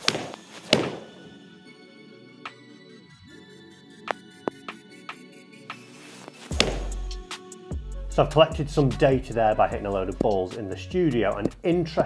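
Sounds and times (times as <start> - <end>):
golf clubs striking balls: 0.0 - 1.1
background music: 0.0 - 12.0.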